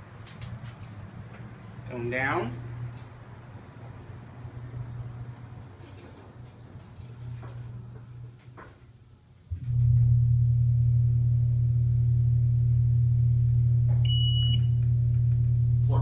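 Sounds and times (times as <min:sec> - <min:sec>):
elevator low hum: 0:09.4 - 0:16.0.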